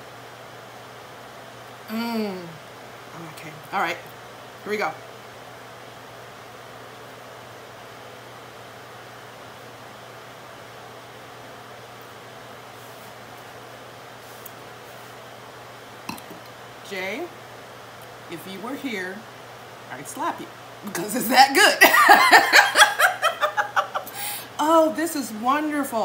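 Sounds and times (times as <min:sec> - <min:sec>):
low hiss with faint hum: 0:00.0 - 0:26.0.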